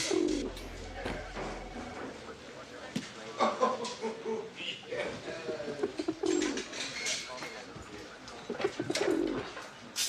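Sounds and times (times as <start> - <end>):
pigeon cooing: 0.0 - 0.7, 5.4 - 6.7, 8.5 - 9.5.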